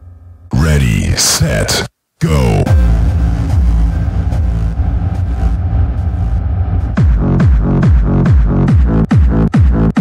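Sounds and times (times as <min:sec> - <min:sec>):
distorted low synth drone: 0:02.4 - 0:08.7.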